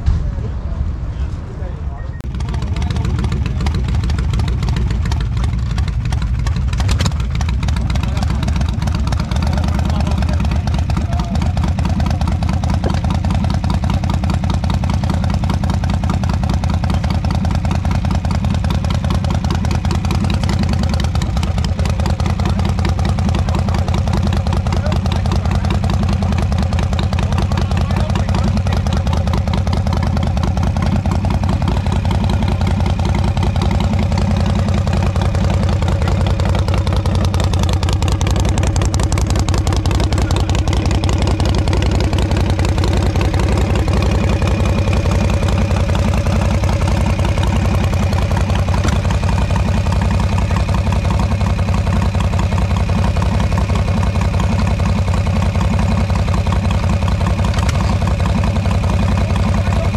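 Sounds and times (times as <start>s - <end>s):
motorcycle engine idling: 2.2s - 59.9s.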